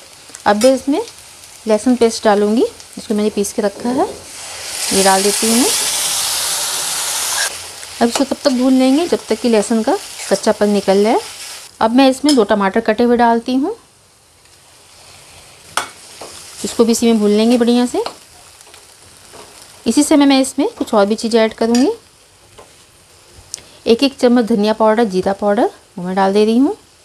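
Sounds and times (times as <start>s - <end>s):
garlic paste sizzling in oil: 0.0s - 27.0s.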